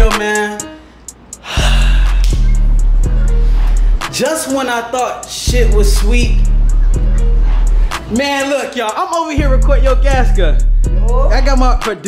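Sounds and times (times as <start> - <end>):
deep bass music: 0.0 - 0.6, 1.4 - 12.0
sharp gasp: 1.4 - 2.3.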